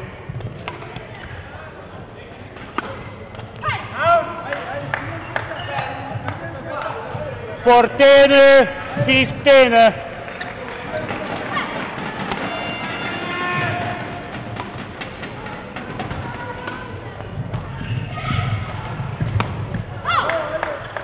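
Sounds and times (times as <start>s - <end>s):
footfalls on court floor: 8.7s - 20.3s.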